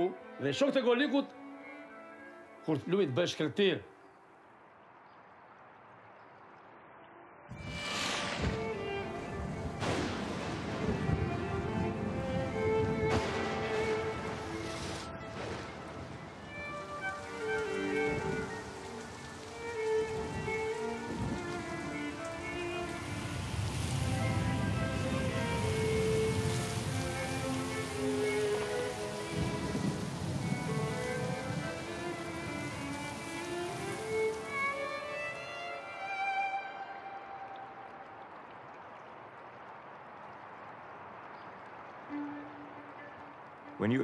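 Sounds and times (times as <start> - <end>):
rushing water: 0.0 - 44.0
thunder: 7.5 - 16.6
orchestral strings held notes: 7.5 - 38.0, 42.0 - 44.0
rain hissing: 7.5 - 44.0.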